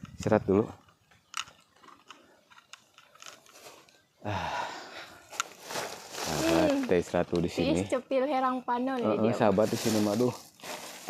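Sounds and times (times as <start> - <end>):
plastic bag rustling: 3.0 - 4.0, 5.3 - 7.6, 9.3 - 11.0
breathy vocal sound: 4.2 - 5.2.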